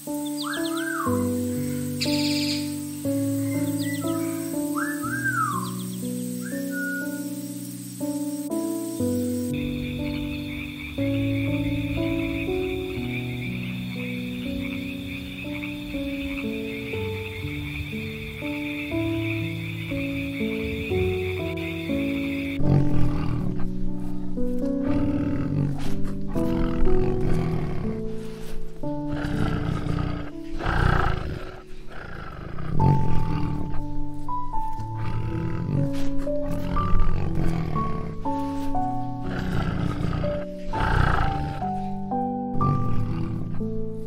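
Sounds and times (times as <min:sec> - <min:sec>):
background music melody: 0:00.0 - 0:44.0
big cat growling: 0:22.1 - 0:43.8.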